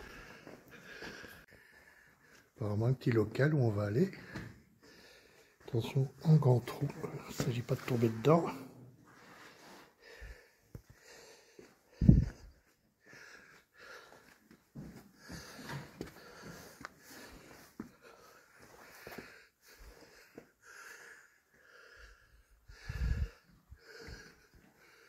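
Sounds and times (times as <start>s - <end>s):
person breathing hard: 0.0s - 2.6s, 4.2s - 5.6s, 9.1s - 25.0s.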